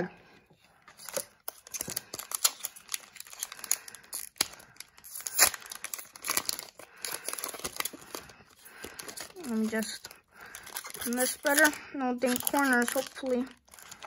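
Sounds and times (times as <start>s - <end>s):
foil wrapper tearing and crinkling: 0.9s - 14.0s.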